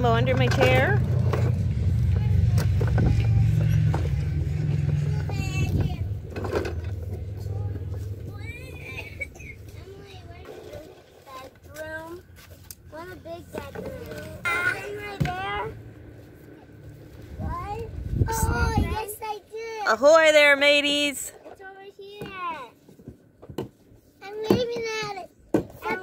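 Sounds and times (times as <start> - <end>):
toy wheels rattling over pavers: 0.0 - 11.7.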